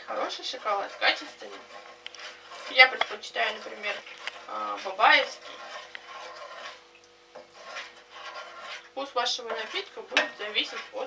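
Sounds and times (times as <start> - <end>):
spoon stirring in a saucepan: 0.0 - 11.0.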